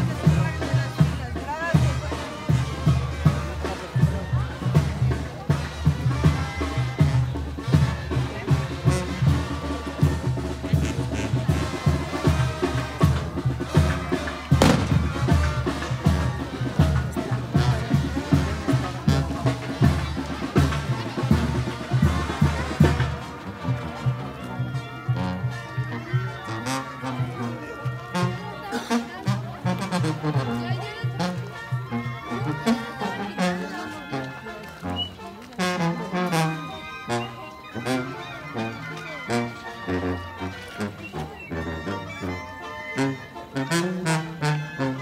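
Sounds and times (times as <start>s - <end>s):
heavy drum beats: 0.0s - 24.7s
brass band slow melody: 0.0s - 45.0s.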